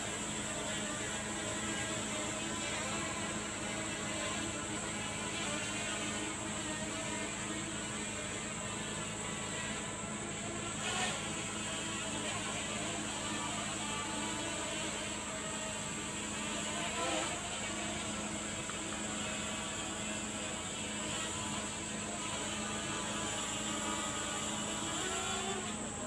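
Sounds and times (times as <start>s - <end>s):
drone propellers whining: 0.0s - 26.0s.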